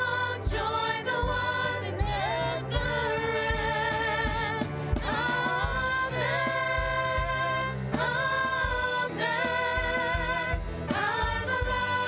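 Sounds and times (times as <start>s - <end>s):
bass guitar: 0.0s - 12.0s
drums: 0.0s - 12.0s
keyboards: 0.0s - 12.0s
singers in harmony: 0.0s - 12.0s.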